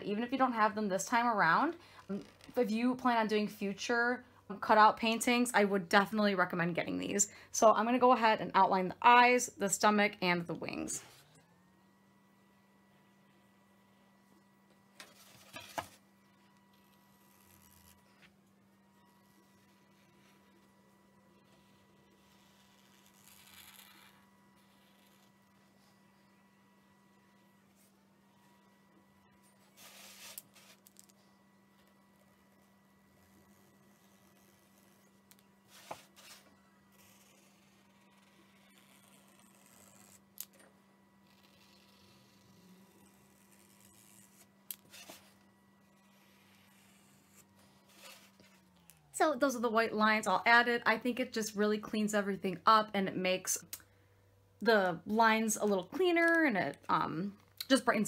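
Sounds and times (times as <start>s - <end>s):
faint hum: 0.0s - 58.0s
marker scratching and clicking: 37.0s - 40.2s.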